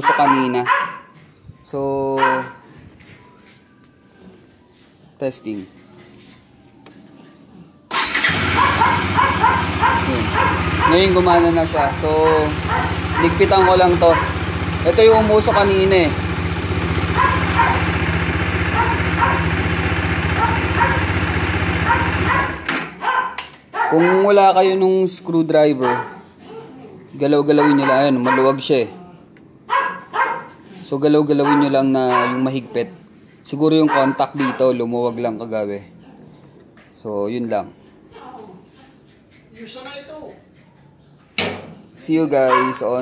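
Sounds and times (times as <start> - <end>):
dog barking: 0.0 - 1.2, 2.2 - 2.7, 8.2 - 15.9, 17.0 - 24.5, 25.7 - 28.7, 29.7 - 30.7, 31.3 - 32.8, 33.8 - 34.8, 42.4 - 43.0
motorcycle engine idling: 7.9 - 22.7.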